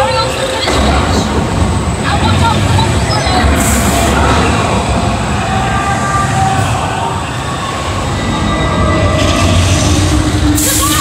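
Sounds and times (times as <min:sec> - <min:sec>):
ride vehicle rumbling: 0:00.0 - 0:11.0.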